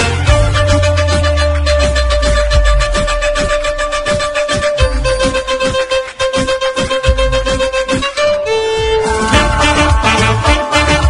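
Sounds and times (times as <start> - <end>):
steady drum beat: 0.0 - 8.2, 9.0 - 11.0
bass line: 0.0 - 11.0
violin melody: 0.0 - 11.0.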